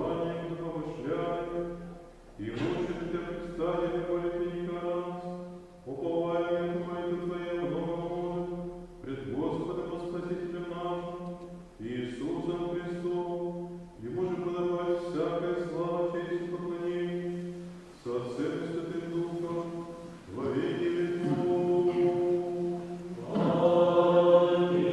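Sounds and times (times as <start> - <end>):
chant sung in held phrases: 0.0 - 24.9.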